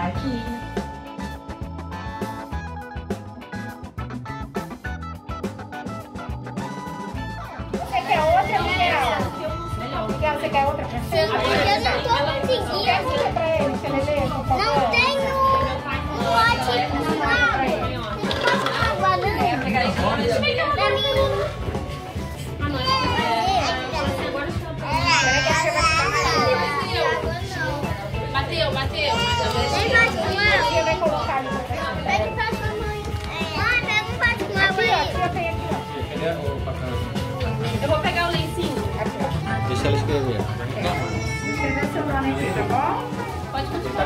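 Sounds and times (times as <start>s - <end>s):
background music: 0.0s - 44.0s
children chattering and calling out: 0.0s - 44.0s.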